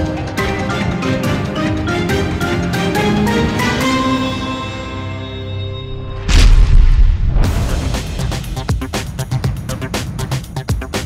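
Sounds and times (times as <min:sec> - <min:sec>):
theme music: 0:00.0 - 0:10.4
whoosh: 0:05.7 - 0:09.0
deep boom hit: 0:05.9 - 0:08.8.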